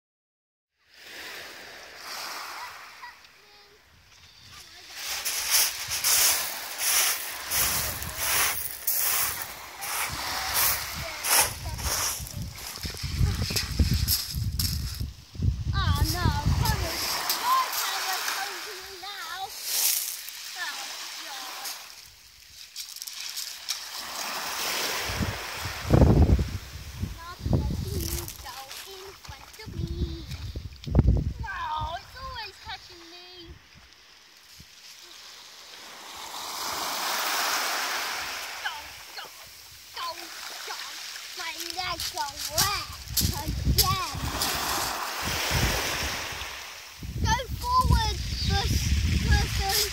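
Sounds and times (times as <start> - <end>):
small waves washing: 0.8 - 49.9
water splashing: 4.3 - 14.8, 15.8 - 31.0, 31.8 - 49.9
pebbles crunching: 4.8 - 15.1, 19.4 - 20.5, 21.6 - 24.2, 41.3 - 45.2.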